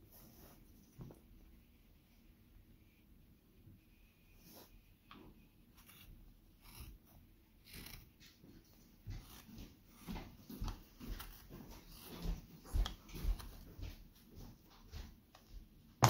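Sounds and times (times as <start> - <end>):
knife scraping wood: 4.4 - 13.6.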